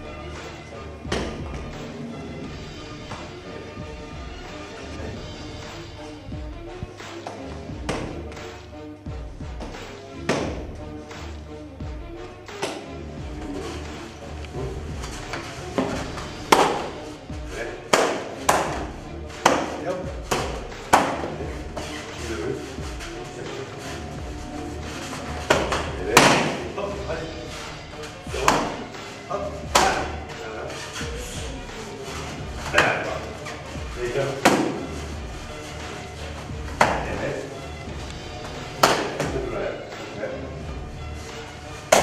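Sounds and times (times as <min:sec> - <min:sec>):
background music: 0:00.0 - 0:42.0
punches slapping focus pads: 0:09.6 - 0:10.7, 0:16.4 - 0:17.0, 0:17.9 - 0:21.4, 0:25.4 - 0:26.7, 0:28.3 - 0:29.0, 0:34.4 - 0:34.9, 0:38.5 - 0:39.4.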